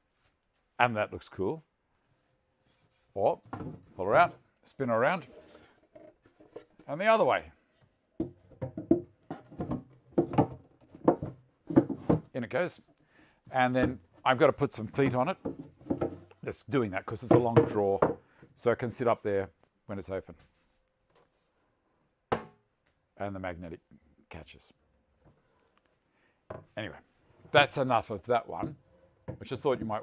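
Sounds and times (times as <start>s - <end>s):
wooden box scraping and knocking on bench: 8.2s - 12.3s, 14.9s - 16.4s.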